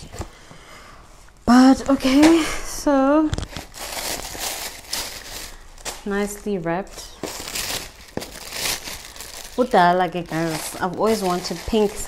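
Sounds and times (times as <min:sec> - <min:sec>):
tissue paper rustling: 0:03.3 - 0:06.3, 0:06.9 - 0:12.0.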